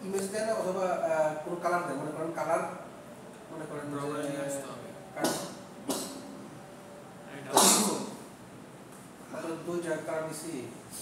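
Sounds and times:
person sneezing: 0:05.2 - 0:06.2, 0:07.5 - 0:08.1.

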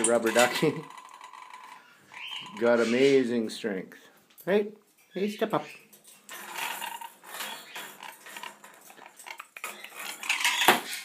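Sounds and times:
plastic toys clattering on wire cage: 0:00.0 - 0:03.0, 0:05.9 - 0:11.0.

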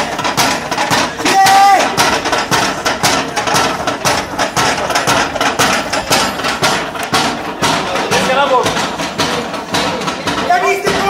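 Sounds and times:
hammer striking wood: 0:00.0 - 0:11.0.

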